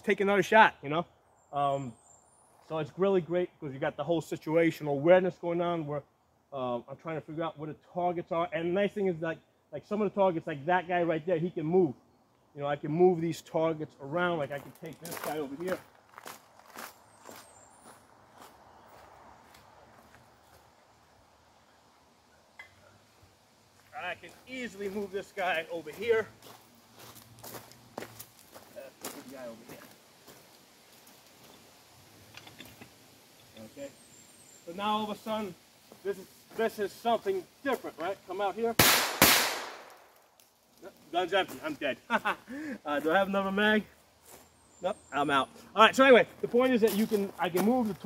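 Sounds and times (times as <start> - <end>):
footsteps crunching on gravel: 14.4 - 20.7, 23.7 - 31.7, 35.0 - 38.6, 40.8 - 44.7, 45.9 - 48.0
pistol shot echoing: 38.8 - 40.0.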